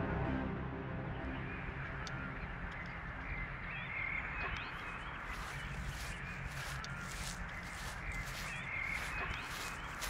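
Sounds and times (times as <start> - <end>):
birds calling: 1.3 - 10.0.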